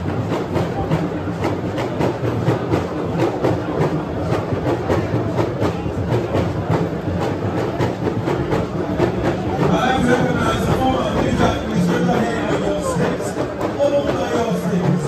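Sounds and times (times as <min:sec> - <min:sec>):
crowd noise: 0:00.0 - 0:15.0
rhythmic beating: 0:00.0 - 0:15.0.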